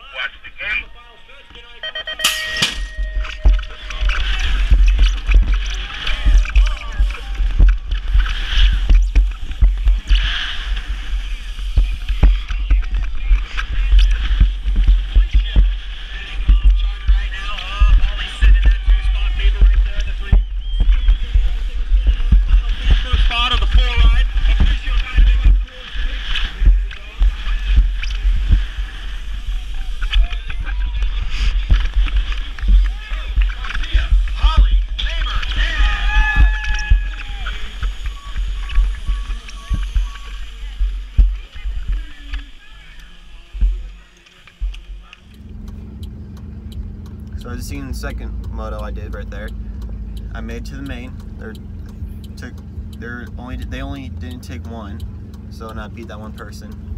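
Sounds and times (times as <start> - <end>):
voices: 0.0 - 56.9
bike knocking and rattling: 2.0 - 51.6
heavy rumble of bike: 2.9 - 56.9
wind buffeting microphone: 3.0 - 47.9.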